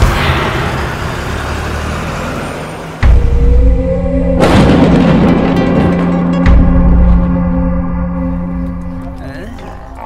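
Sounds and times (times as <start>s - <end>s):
bus engine running: 0.0s - 4.4s.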